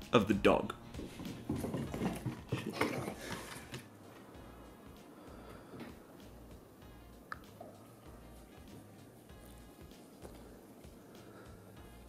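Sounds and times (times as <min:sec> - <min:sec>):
dog paws clicking on wooden floor: 0:01.0 - 0:03.9.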